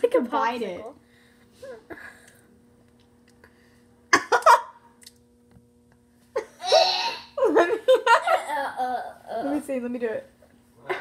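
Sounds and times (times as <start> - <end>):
faint steady hum: 0.0 - 11.0
girl laughing: 6.4 - 9.3.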